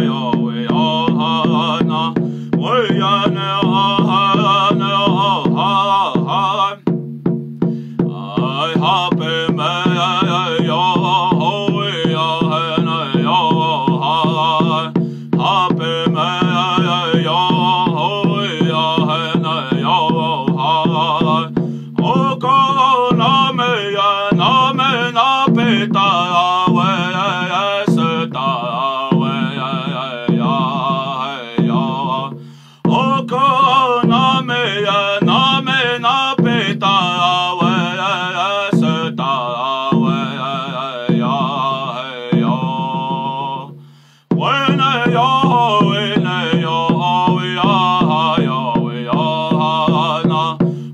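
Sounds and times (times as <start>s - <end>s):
man singing chant-like song: 0.0s - 7.0s, 7.6s - 50.9s
hand drum beat: 0.0s - 50.9s.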